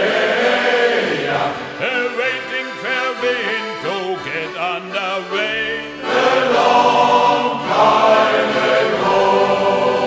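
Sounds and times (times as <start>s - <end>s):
choir singing in harmony: 0.0s - 2.4s, 5.2s - 10.0s.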